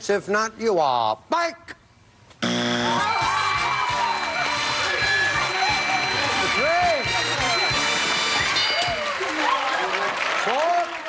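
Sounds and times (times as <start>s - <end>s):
audience applauding: 3.0s - 11.0s.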